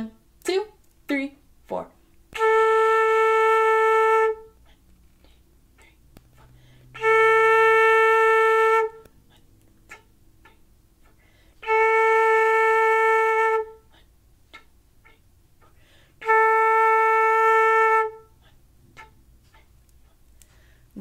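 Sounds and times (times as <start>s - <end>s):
flute playing held notes: 2.3s - 4.6s, 6.4s - 9.1s, 9.9s - 15.2s, 16.2s - 18.4s.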